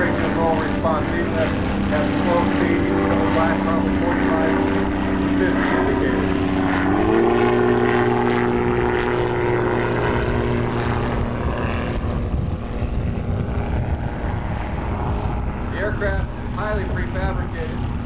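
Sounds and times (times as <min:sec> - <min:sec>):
ultralight aircraft engine and propeller: 0:00.0 - 0:18.0.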